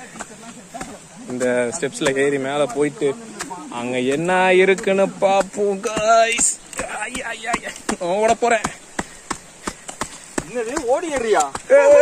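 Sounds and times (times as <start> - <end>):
footsteps on earthen steps: 0.0 - 12.0
people calling out: 11.1 - 12.0.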